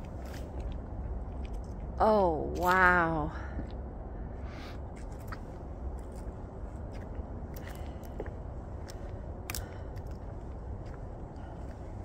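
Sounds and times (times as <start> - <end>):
low steady rumble: 0.0 - 12.0
footsteps on wooden boardwalk: 6.0 - 12.0.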